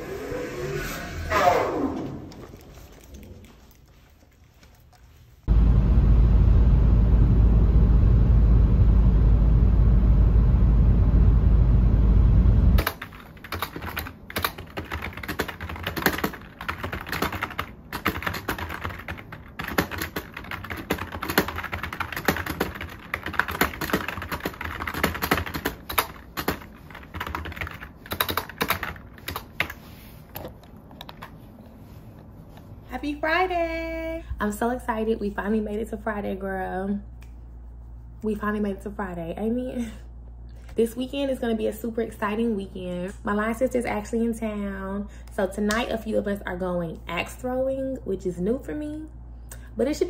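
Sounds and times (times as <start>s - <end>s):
computer keyboard typing: 12.8s - 29.8s.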